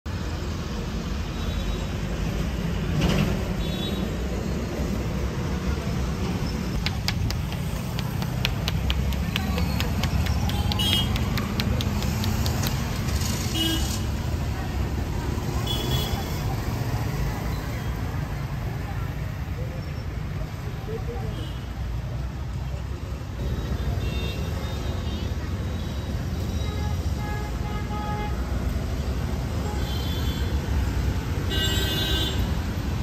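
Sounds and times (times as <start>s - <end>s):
traffic rumble: 0.1s - 33.0s
hands slapping scalp: 6.8s - 13.0s.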